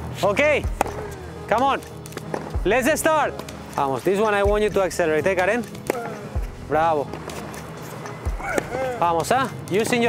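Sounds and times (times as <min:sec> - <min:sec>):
rackets striking tennis balls: 0:00.3 - 0:10.0
man shouting: 0:08.4 - 0:09.0.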